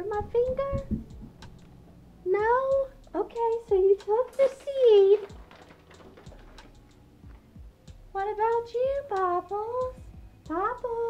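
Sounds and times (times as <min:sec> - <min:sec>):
woman's voice: 0:00.0 - 0:01.0, 0:02.3 - 0:05.4, 0:08.2 - 0:11.0.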